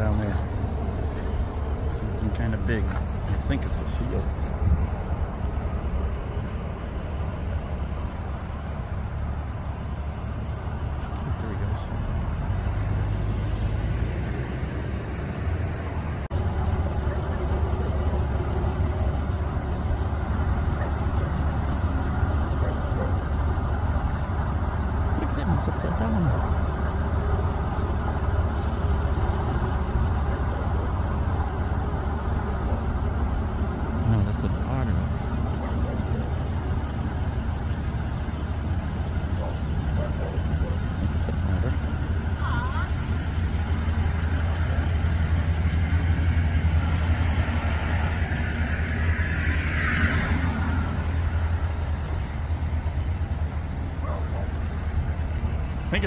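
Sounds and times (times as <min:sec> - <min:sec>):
faint voices: 0:16.4 - 0:46.2, 0:53.0 - 0:56.0.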